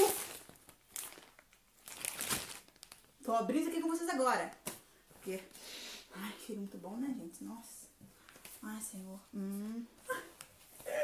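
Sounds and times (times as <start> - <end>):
plastic packaging crinkling: 0.0 - 3.3.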